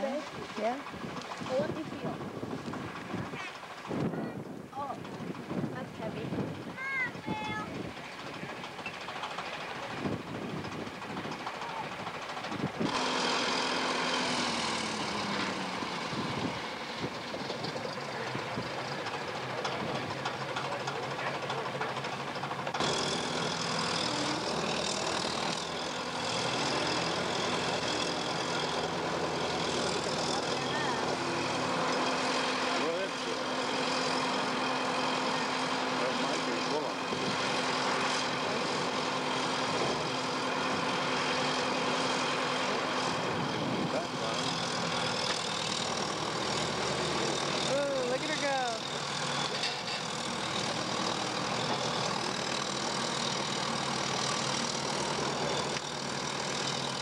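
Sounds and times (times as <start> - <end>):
heavy engine running: 0.0 - 57.0.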